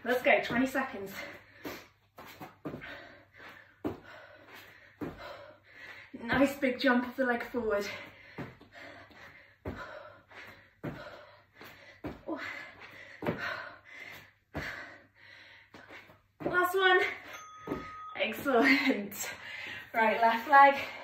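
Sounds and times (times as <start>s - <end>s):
bare feet landing on mat: 17.6s - 18.5s.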